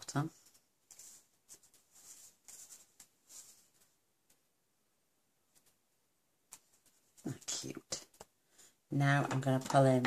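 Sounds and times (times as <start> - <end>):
soft pats and rustles: 0.4 - 4.4.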